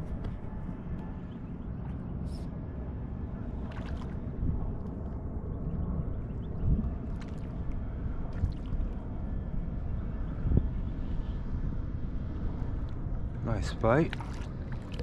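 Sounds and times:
low wind rumble on microphone: 0.0 - 15.0.

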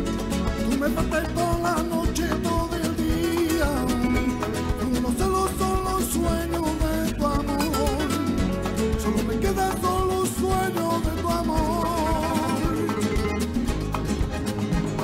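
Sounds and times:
strummed guitars: 0.0 - 15.0
man singing with vibrato: 0.6 - 13.4.

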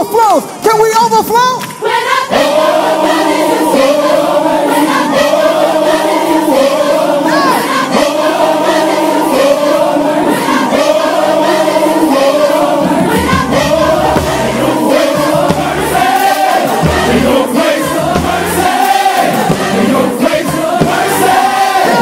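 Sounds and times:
gospel choir singing: 1.6 - 22.0
crowd shouting: 2.0 - 22.0.

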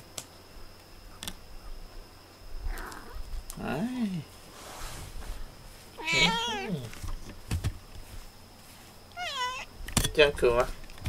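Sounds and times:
cat meowing: 6.0 - 6.8, 9.2 - 9.7.

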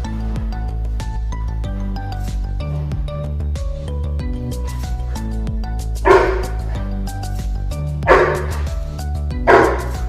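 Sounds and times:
dog barking deeply: 6.1 - 7.0, 8.1 - 8.8, 9.5 - 10.0.

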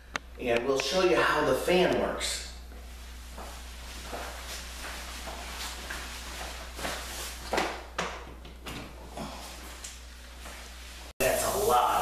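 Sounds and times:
fan running with low hum: 0.0 - 12.0
air hiss: 11.2 - 12.0.

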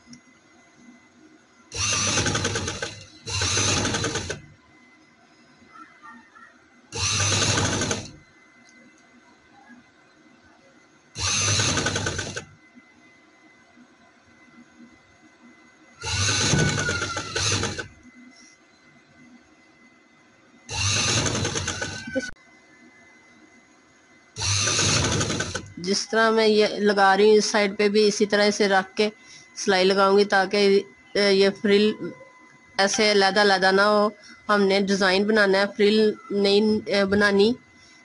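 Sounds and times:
sewing machine running: 1.7 - 4.5, 6.9 - 8.2, 11.2 - 12.6, 16.0 - 18.0, 20.7 - 22.3, 24.4 - 25.9.

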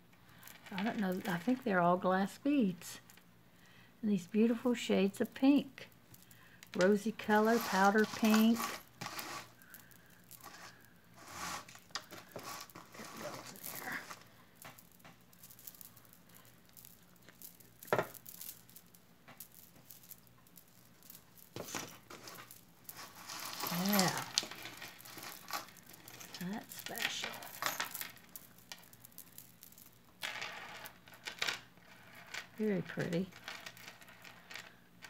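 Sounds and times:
glass beads clicking and rattling: 0.3 - 3.3, 4.2 - 34.9.

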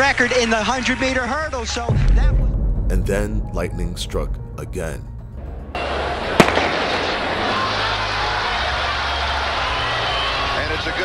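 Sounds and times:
stadium crowd noise: 5.8 - 11.0
starting pistol shot: 6.3 - 7.5.

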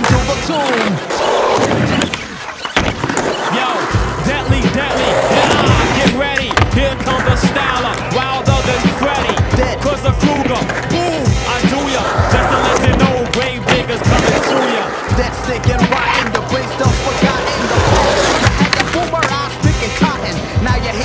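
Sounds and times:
skateboard wheels rolling on concrete: 0.0 - 21.0
background music with bass line: 3.1 - 21.0
skateboard clacks and knocks: 4.7 - 19.6.

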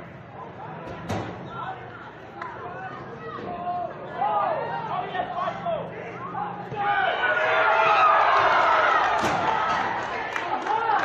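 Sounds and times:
people shouting: 2.8 - 11.0.

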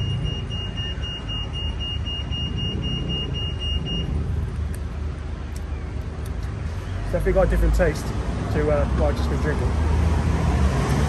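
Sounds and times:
busy road traffic: 0.0 - 11.0.

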